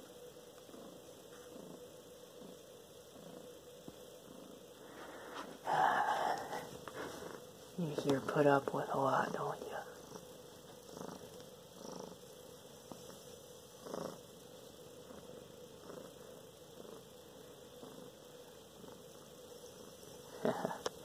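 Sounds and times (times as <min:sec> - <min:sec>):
cat purring: 0:00.0 - 0:21.0.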